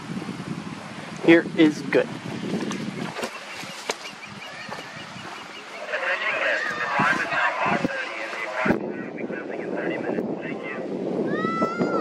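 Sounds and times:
loud jumbled noise: 3.0s - 10.0s
osprey high chirps: 3.2s - 6.7s.

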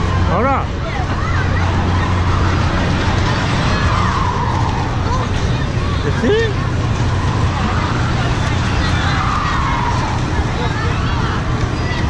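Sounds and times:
low machine hum: 0.0s - 12.0s
people talking: 0.0s - 12.0s.

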